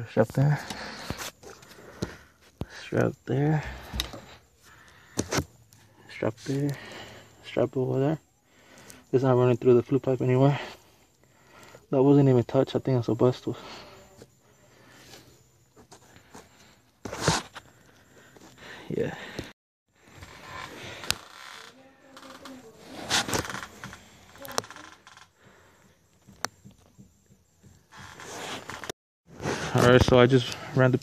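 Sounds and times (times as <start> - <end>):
handling knocks and scrapes: 14.9 - 17.8, 26.2 - 30.2.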